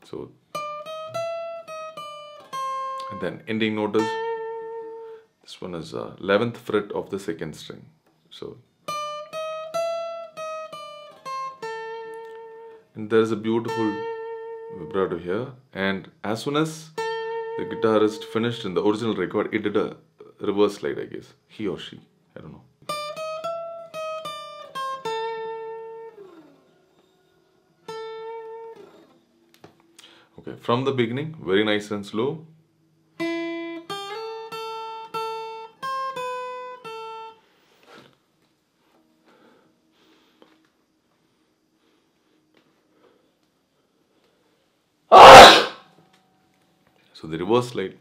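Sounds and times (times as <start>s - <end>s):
person sneezing: 45.1s - 45.8s.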